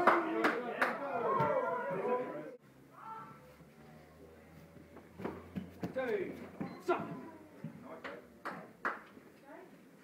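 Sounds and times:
voices in a large room: 0.0 - 10.0.

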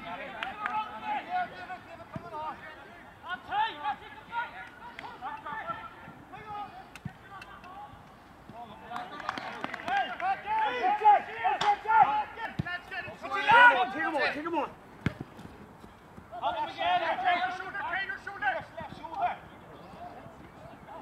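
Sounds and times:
footballers shouting: 0.0 - 14.8, 16.2 - 21.0.

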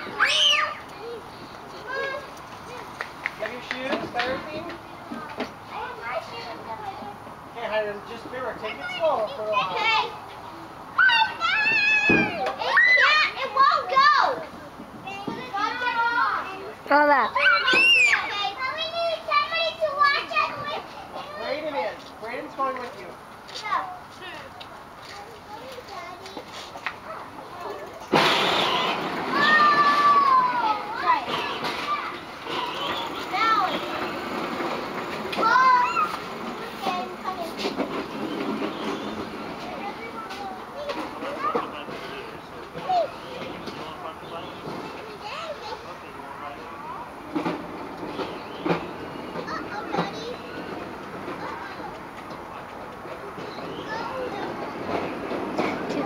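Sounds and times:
faint distant voices: 0.0 - 56.0.

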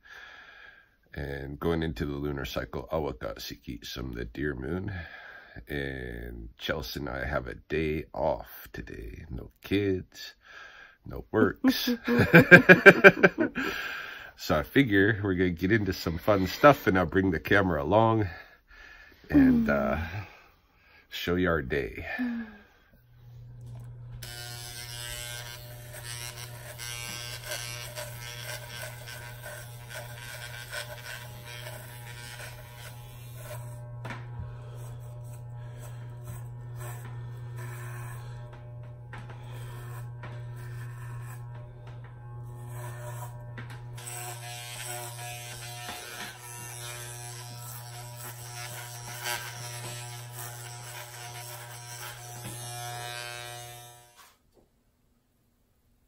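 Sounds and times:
electric shaver buzzing: 11.8 - 14.2, 19.3 - 20.3, 23.2 - 54.4.

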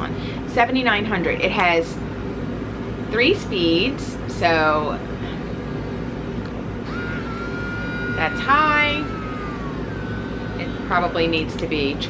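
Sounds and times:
steady low hum: 1.4 - 12.0
nail grinder whining: 6.8 - 11.7.

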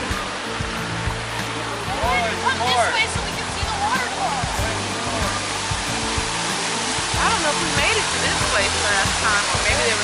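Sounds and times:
waterfall splashing over rocks: 0.0 - 10.0.

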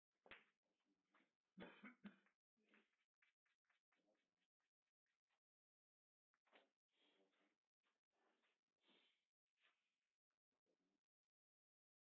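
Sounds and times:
person coughing: 1.6 - 2.3.

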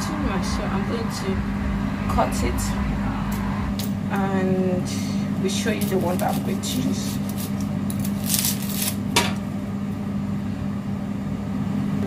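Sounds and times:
extractor fan humming: 0.0 - 11.5.

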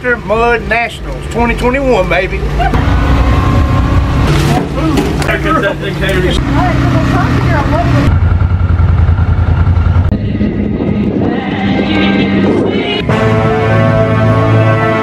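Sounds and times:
motor engine humming: 0.0 - 15.0
people talking: 4.4 - 8.1.

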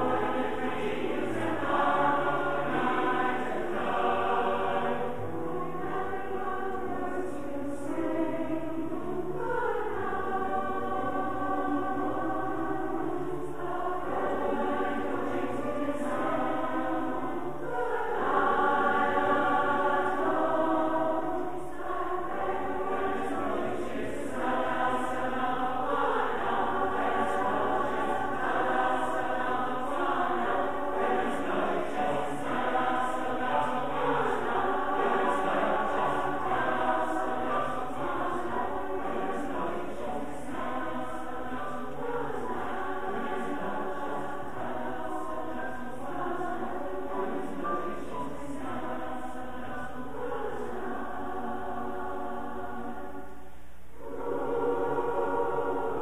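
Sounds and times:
mixed choir singing: 0.0 - 56.0.

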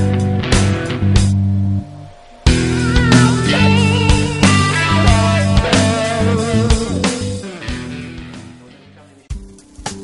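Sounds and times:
background music with sustained instruments: 0.0 - 9.9.

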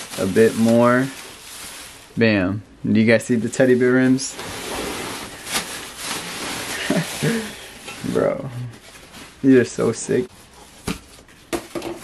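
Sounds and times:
plastic wrapping rustling: 0.0 - 2.3, 2.9 - 12.0.

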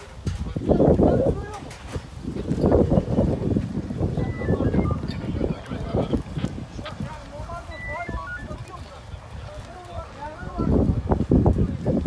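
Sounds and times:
short wavering calls: 4.1 - 5.3, 7.7 - 8.6.

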